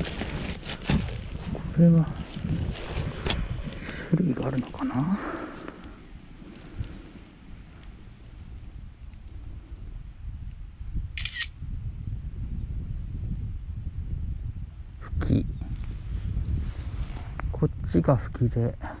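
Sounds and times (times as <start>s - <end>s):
phone camera shutter: 11.2s - 11.6s.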